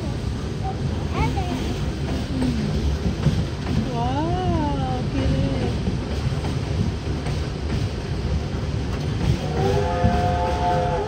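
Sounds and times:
ride train wheels rumbling: 0.0s - 11.0s.

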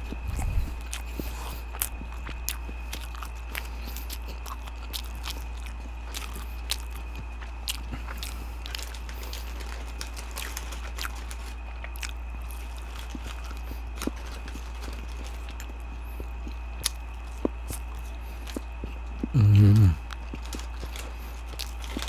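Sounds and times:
chewing crunchy food: 0.0s - 22.0s
steady low hum: 0.0s - 22.0s
paper wrappers rustling: 8.0s - 16.4s, 20.2s - 22.0s.

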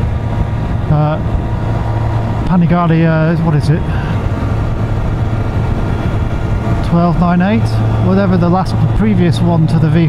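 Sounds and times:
motorcycle engine humming: 0.0s - 10.0s
road noise: 0.0s - 10.0s
wind: 0.0s - 10.0s.

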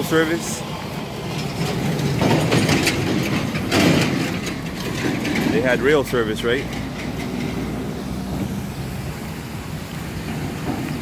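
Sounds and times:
traffic noise wash: 0.0s - 11.0s
vehicle engine hum: 0.0s - 11.0s.

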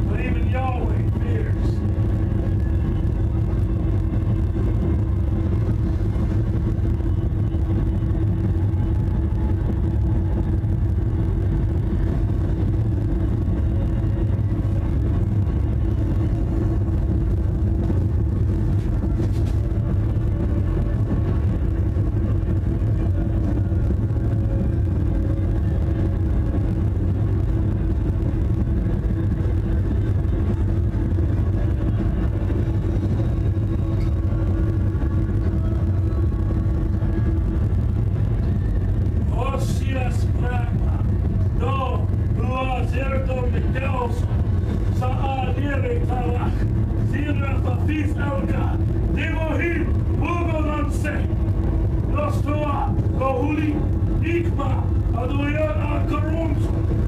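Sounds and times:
faint held hum: 0.0s - 57.0s
steady low rumble: 0.0s - 57.0s.

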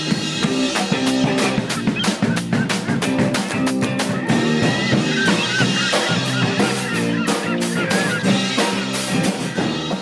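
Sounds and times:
rock music with guitar and drums: 0.0s - 10.0s
goose honking: 1.4s - 9.7s.

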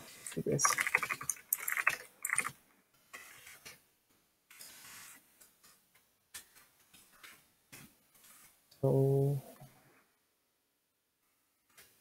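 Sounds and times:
computer keyboard typing: 0.2s - 2.6s.

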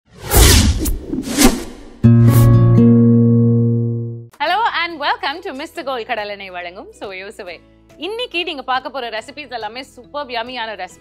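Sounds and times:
whooshing sweeps: 0.1s - 2.6s
sustained musical chord: 2.1s - 4.3s.

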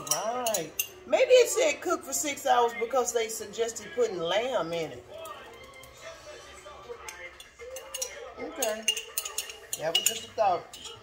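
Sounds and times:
utensil clinking glass jar: 0.0s - 1.0s, 7.0s - 11.0s
background television: 0.0s - 11.0s.

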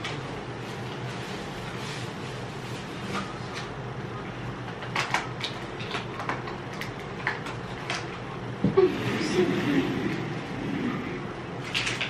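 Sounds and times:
packaging clicks and crackles: 4.7s - 8.2s, 11.6s - 12.0s
low hum: 8.2s - 12.0s.

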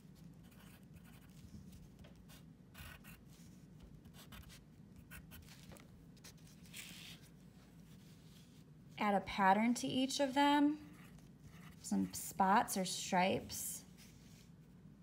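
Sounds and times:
pencil scratching on paper: 0.4s - 3.5s, 10.8s - 12.2s.

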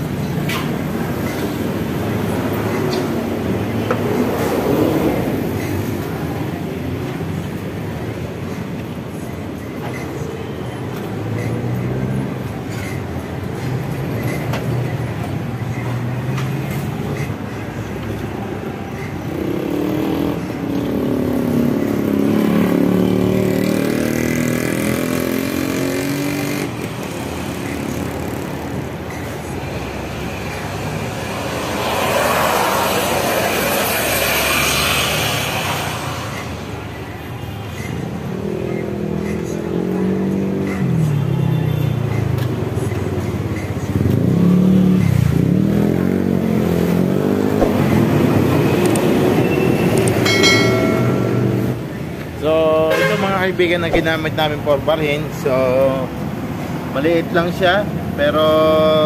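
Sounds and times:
vehicle engines passing: 0.0s - 59.0s.

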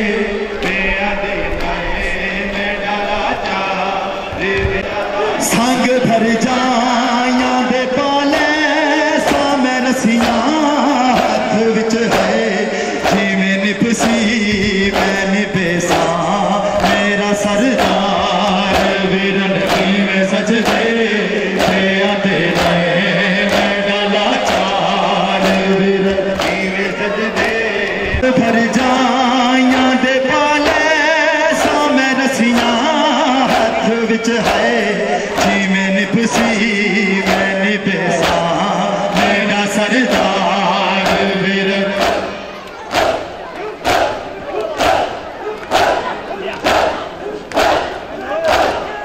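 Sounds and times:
men chanting: 0.0s - 49.0s.

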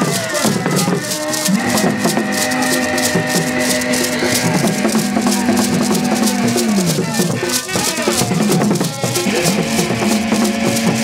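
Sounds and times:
beaded gourd rattles shaken: 0.0s - 11.0s.

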